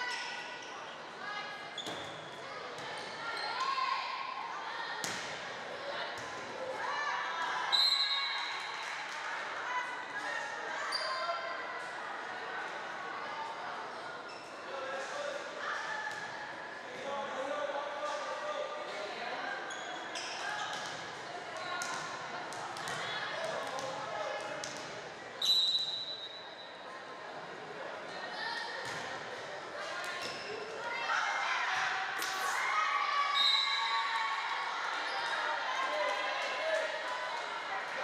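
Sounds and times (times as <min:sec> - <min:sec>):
players and spectators chattering: 0:00.0 - 0:38.0
referee whistle blasts: 0:25.4 - 0:26.4.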